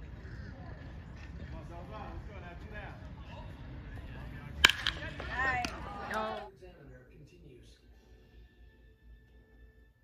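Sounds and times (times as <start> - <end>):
baseball bat cracking ball: 4.5 - 6.4.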